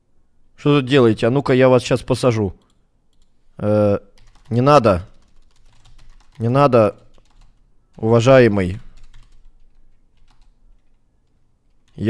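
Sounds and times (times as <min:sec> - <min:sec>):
faint keyboard typing: 0:02.5 - 0:12.0.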